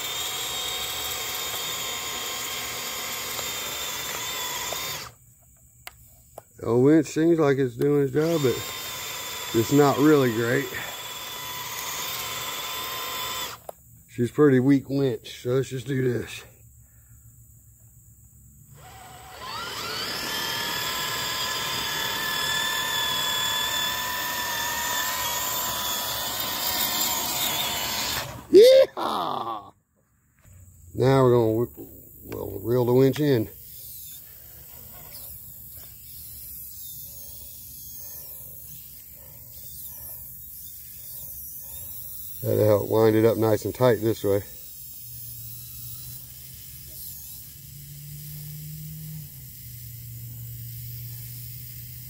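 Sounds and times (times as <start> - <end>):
electric winch motor whining: 0.0 - 5.2, 7.8 - 13.7, 18.7 - 28.6, 32.9 - 51.6.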